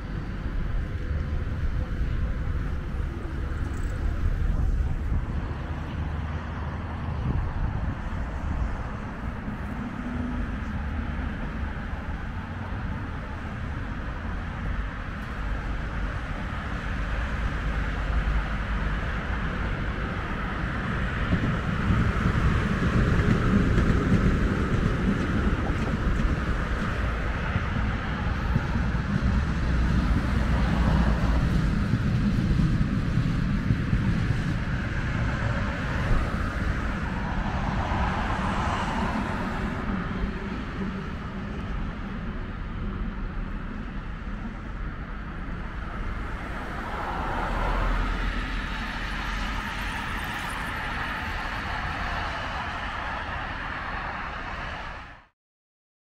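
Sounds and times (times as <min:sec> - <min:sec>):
tram on tracks: 0:00.0 - 0:55.3
vehicles passing: 0:00.0 - 0:55.3.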